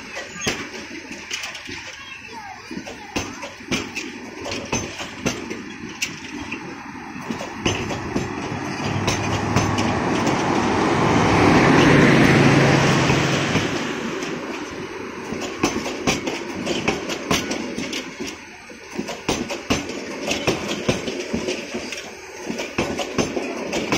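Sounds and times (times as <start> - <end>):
train rushing past: 0.0 - 23.9
train wheels clacking over rail joints: 0.0 - 23.9.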